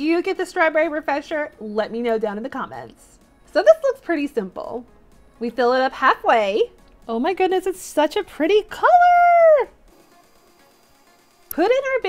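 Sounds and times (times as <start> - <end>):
woman's high drawn-out exclamation: 8.8 - 9.8.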